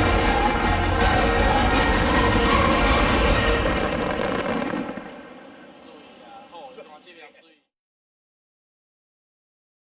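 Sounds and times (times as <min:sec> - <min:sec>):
fireworks crackling and rumbling: 0:00.0 - 0:07.3.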